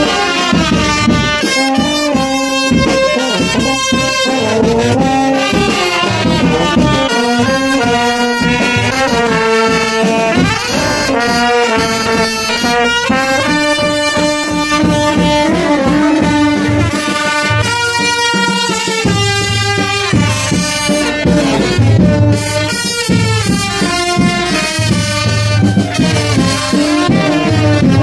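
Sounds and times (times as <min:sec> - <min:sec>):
brass band playing melody: 0:00.0 - 0:28.0.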